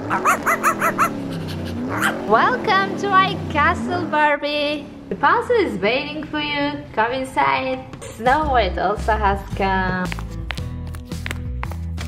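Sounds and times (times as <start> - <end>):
small dog yapping: 0.0 - 2.3.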